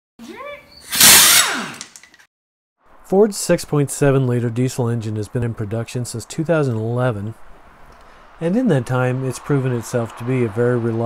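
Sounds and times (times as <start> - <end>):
whoosh with falling pitch: 7.4 - 11.0.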